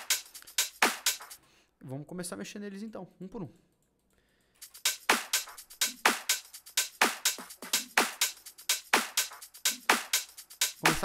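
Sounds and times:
drum machine percussion: 0:00.0 - 0:01.4, 0:04.5 - 0:11.0.

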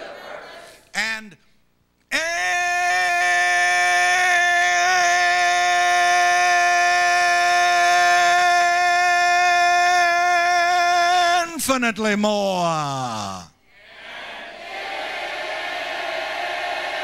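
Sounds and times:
man singing long note: 0:02.1 - 0:11.6.

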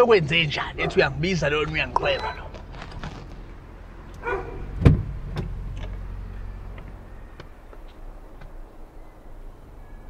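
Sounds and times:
car idling: 0:00.0 - 0:10.0
heavy thump: 0:04.8 - 0:05.5.

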